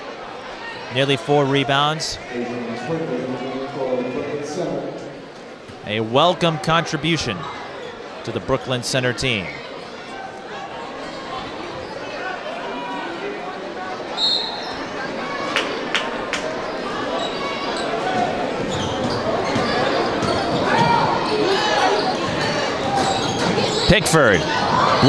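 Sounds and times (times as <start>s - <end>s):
crowd talking and calling: 0.0s - 25.0s.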